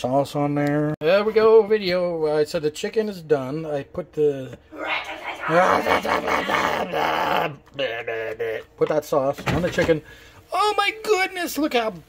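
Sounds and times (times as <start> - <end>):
man calling out loudly: 5.3 - 8.8.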